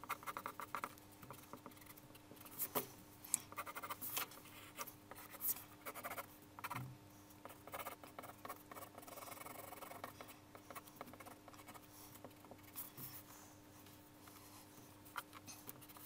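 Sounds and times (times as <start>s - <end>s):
pencil scratching on paper: 0.0s - 2.9s, 3.5s - 6.8s, 7.4s - 13.3s, 14.3s - 16.0s.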